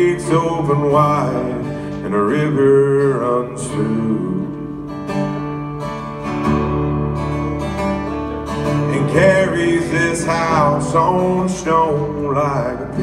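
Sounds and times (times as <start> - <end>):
acoustic guitar strumming: 0.0 - 13.0.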